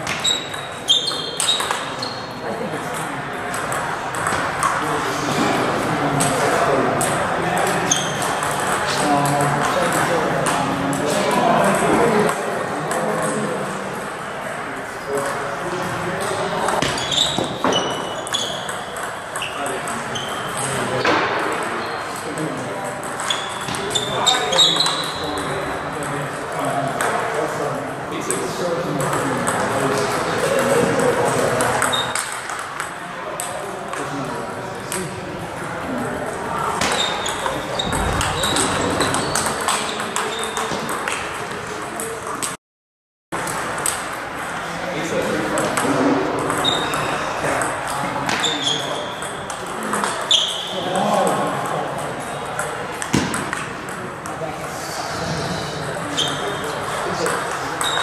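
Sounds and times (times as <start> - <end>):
table tennis ball hits: 0.0 - 2.1, 2.9 - 13.5, 16.2 - 27.3, 36.6 - 42.6, 43.4 - 44.6, 45.2 - 54.4, 56.3 - 58.0
babble of voices: 54.0 - 58.0.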